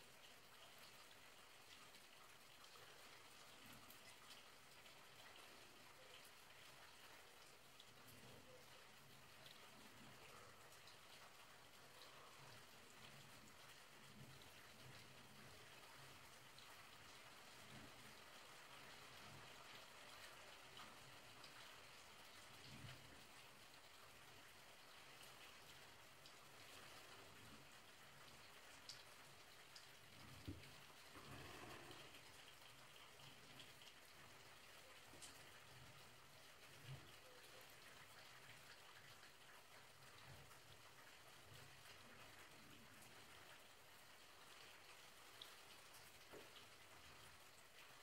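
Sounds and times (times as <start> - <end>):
faint steady hiss: 0.0 - 48.0.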